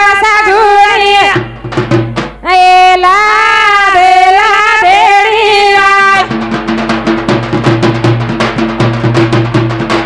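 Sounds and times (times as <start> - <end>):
woman singing into microphone: 0.0 - 1.6, 2.4 - 6.3.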